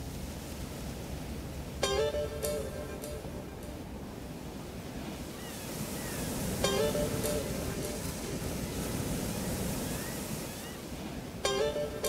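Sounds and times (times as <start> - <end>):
waves breaking: 0.0 - 12.0
faint rising whistles: 8.6 - 10.9.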